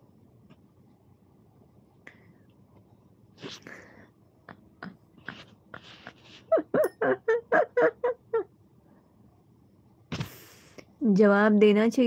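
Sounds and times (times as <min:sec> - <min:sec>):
woman giggling: 0:04.4 - 0:08.5.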